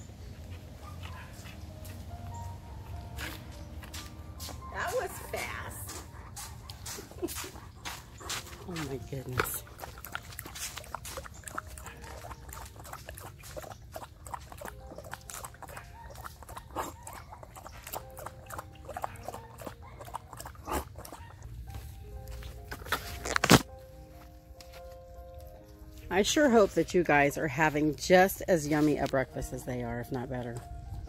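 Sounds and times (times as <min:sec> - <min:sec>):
dogs lapping from bowls: 0:04.9 - 0:21.5.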